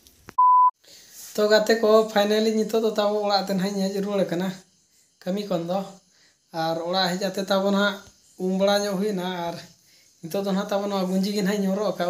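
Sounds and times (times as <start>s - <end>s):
short electronic beep: 0.4s - 0.7s.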